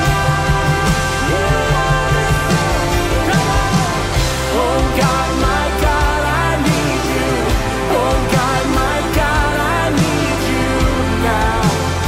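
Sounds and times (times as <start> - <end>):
drum kit with cymbals: 0.0 - 12.0
person singing a melody: 0.0 - 12.0
steady low notes: 0.0 - 12.0.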